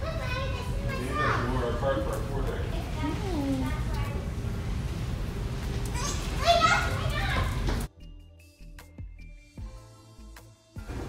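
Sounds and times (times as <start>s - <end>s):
low rumble of ship: 1.6s - 7.9s
child calling out: 6.0s - 7.6s.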